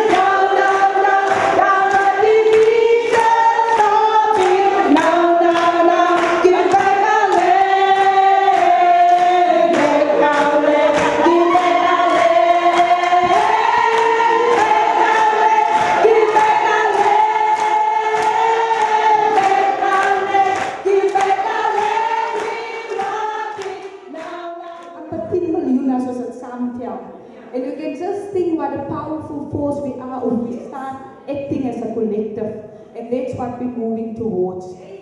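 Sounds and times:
group singing in harmony: 0.0 - 25.4.

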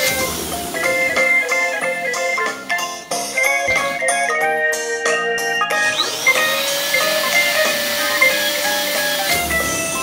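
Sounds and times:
electric balloon pump whine: 0.0 - 2.8, 5.7 - 10.0
background music: 0.0 - 10.0.

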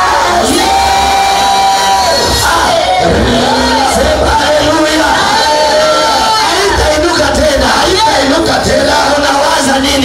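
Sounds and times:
congregation shouting and cheering: 0.0 - 10.0.

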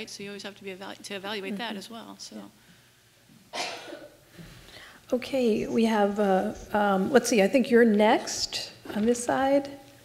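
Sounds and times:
short cough: 3.5 - 4.2.

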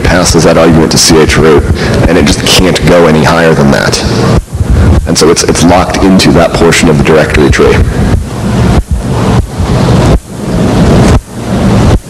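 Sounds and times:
loud low rumbling: 0.0 - 12.0.

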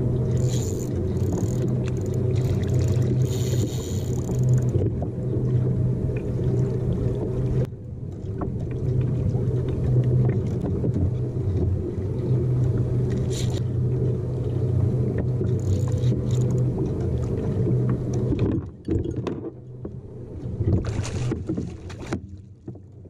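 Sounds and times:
water and wind rumble: 0.0 - 23.0.

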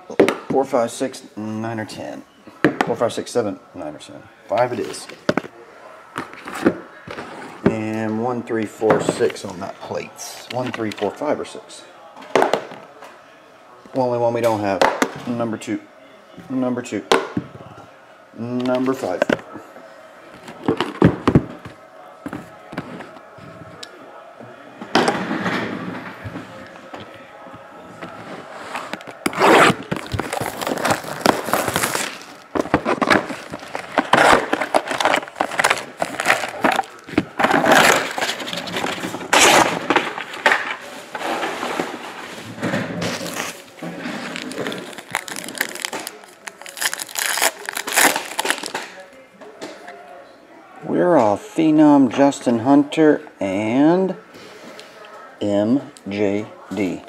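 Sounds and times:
plastic wrap tearing: 28.8 - 40.3, 43.1 - 49.0
plastic wrap crinkling: 28.8 - 40.4, 43.1 - 49.0.

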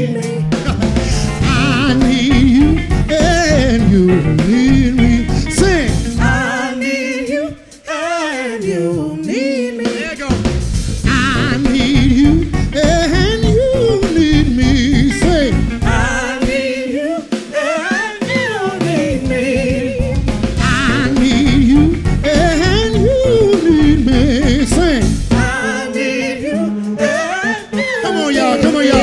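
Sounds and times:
electric guitar: 0.0 - 7.8, 9.9 - 29.0
live band playing: 0.0 - 29.0
man singing: 0.0 - 29.0.

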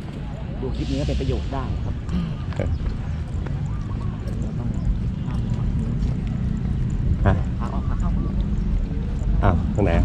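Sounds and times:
faint voices: 0.0 - 10.0
footsteps on pavement: 1.8 - 10.0.

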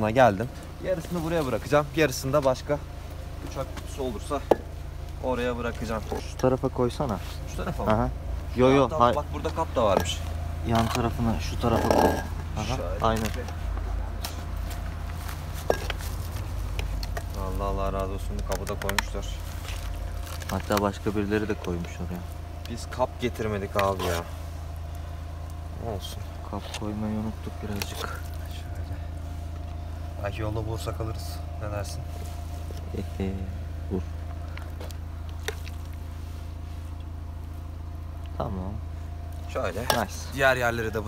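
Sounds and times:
low engine hum: 0.0 - 41.0.

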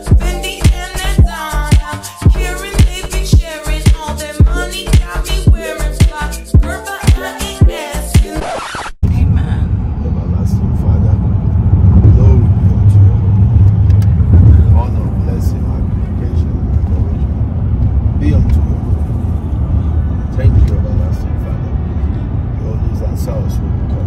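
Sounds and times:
car road and engine rumble: 9.0 - 24.0.

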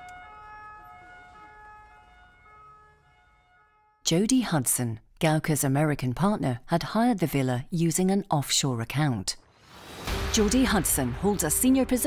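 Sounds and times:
police car siren: 0.0 - 4.0.

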